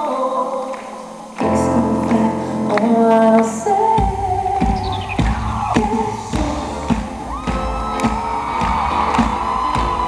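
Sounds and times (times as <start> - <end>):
drums keeping a steady beat: 4.0 - 10.0
live band playing: 4.0 - 10.0
crowd cheering: 6.9 - 10.0.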